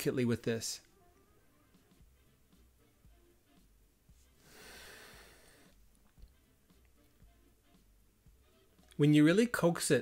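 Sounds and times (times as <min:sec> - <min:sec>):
soft breath through nose: 0:04.2 - 0:05.8.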